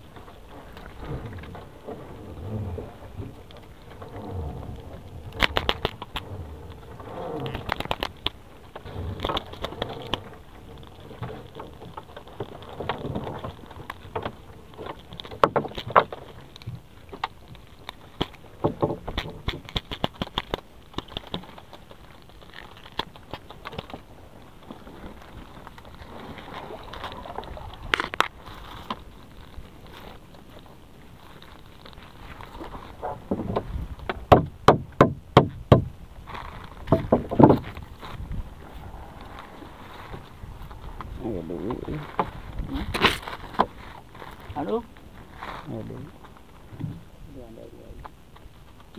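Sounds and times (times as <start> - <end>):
wet fishing net rustling: 0.0 - 34.0, 36.1 - 46.8
sharp knocks: 33.3 - 35.9.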